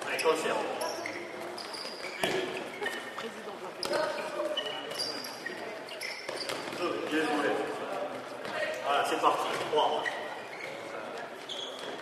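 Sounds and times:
sneaker squeaks: 0.0s - 7.7s, 8.4s - 12.0s
ball bouncing on floor: 1.7s - 2.5s.

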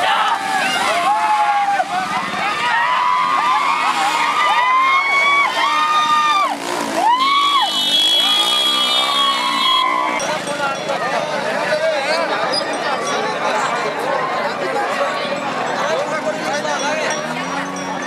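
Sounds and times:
crowd shouting and yelling: 0.0s - 18.0s.

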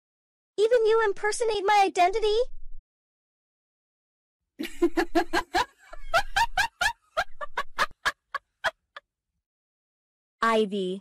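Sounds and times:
woman laughing: 4.6s - 9.0s.

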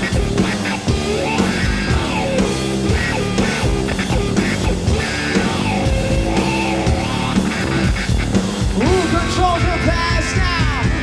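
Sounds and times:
bass guitar: 0.0s - 11.0s
electric guitar: 0.0s - 11.0s.

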